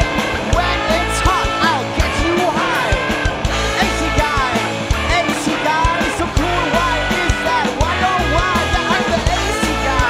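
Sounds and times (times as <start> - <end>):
bass: 0.0 - 10.0
drum beat: 0.0 - 10.0.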